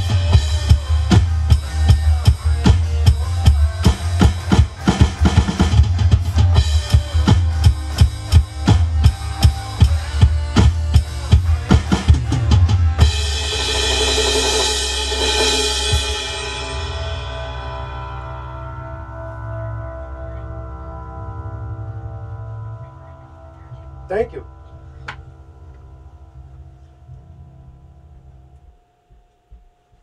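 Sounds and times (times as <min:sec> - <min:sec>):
electronic drums played hard: 0:00.0 - 0:18.6
backing song: 0:00.0 - 0:28.7
cymbal crash: 0:13.0 - 0:22.3.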